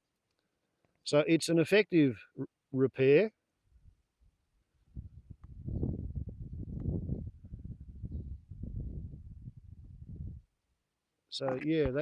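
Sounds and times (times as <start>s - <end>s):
low rumbling microphone noise: 4.9s - 10.5s, 11.5s - 12.0s.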